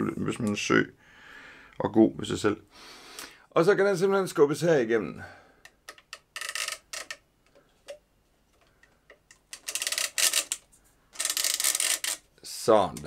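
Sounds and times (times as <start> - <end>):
small clicks: 8.6 - 12.2.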